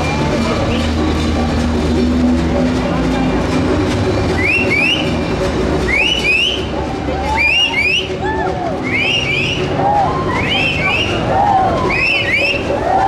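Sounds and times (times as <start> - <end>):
crowd chatter: 0.0 - 13.0
heavy vehicle engine running: 0.0 - 13.0
short rising whistles: 8.8 - 9.7, 11.8 - 12.8.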